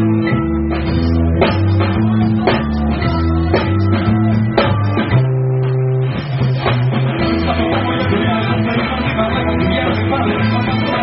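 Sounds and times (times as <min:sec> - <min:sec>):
bass and electric guitars: 0:00.0 - 0:11.0
drum hits: 0:00.7 - 0:09.1.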